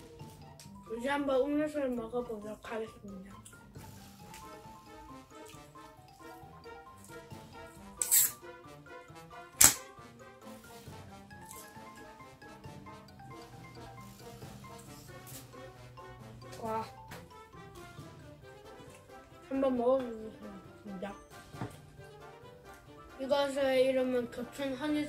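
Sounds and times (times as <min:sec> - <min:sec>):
background music: 0:00.0 - 0:25.0
can hissing: 0:08.0 - 0:08.4
can opening snap: 0:08.0 - 0:08.4, 0:09.6 - 0:09.9.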